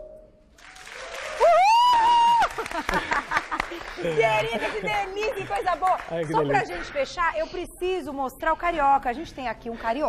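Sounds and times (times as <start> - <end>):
crowd clapping and cheering: 0.5 - 6.6
loud whoop: 1.0 - 2.8.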